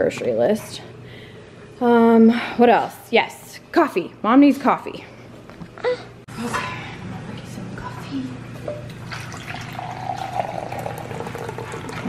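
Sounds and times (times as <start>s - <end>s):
coffee pouring into mug: 8.8s - 12.0s.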